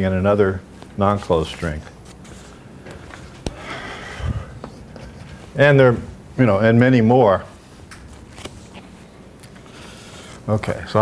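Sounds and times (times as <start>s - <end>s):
man sniffing: 3.5s - 5.4s.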